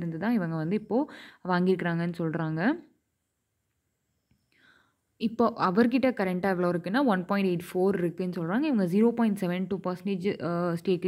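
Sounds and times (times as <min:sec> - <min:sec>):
faint short breath: 0:01.1 - 0:01.4, 0:04.4 - 0:05.0.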